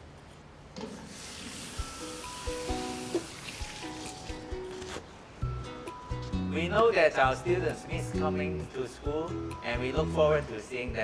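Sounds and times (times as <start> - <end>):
tap water running into sink: 1.0 - 4.2.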